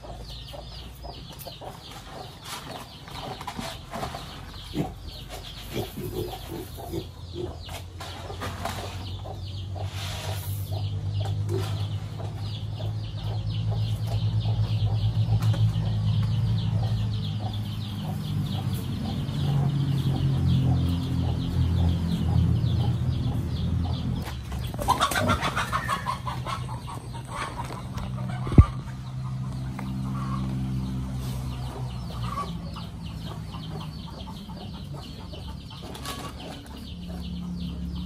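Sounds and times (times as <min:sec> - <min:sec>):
chickens clucking: 0:00.0 - 0:38.0.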